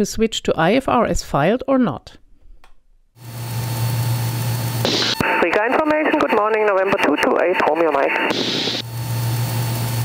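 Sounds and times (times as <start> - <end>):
aircraft engine drone in cabin: 3.2 - 10.0
short high hiss: 4.8 - 5.2
intercom speech: 5.2 - 8.4.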